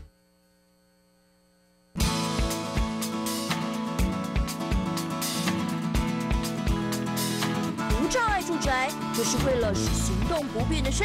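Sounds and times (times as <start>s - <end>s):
faint electrical hum: 0.0s - 2.0s.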